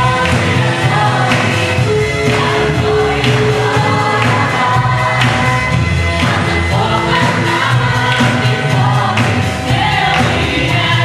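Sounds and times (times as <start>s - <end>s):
group of voices singing: 0.0s - 11.0s
instrumental accompaniment: 0.0s - 11.0s
steady beat: 0.0s - 11.0s.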